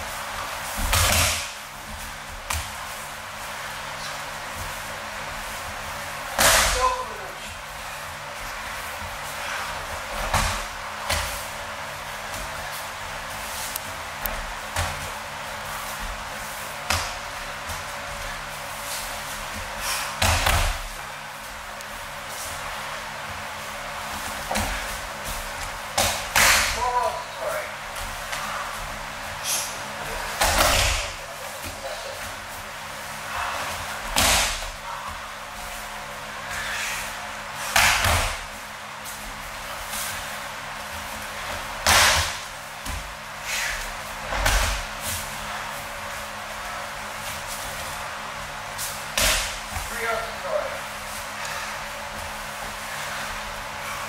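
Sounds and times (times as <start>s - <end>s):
bodies slapping and thudding on mat: 0.2s - 6.8s, 8.2s - 21.6s, 22.5s - 26.8s, 27.8s - 36.5s, 37.5s - 49.9s.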